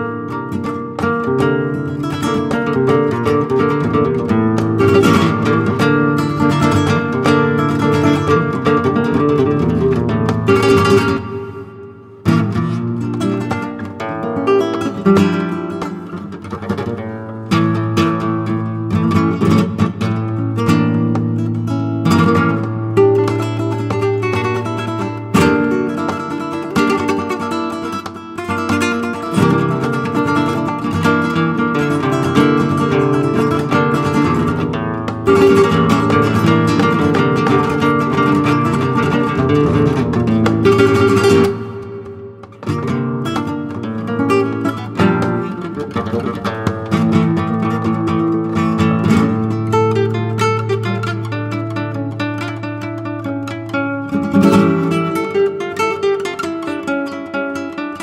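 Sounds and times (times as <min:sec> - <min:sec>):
flamenco guitar playing: 0:00.0 - 0:58.0.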